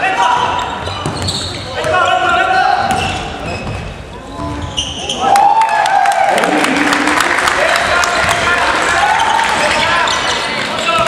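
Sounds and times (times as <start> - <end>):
players' voices: 0.0 - 11.0.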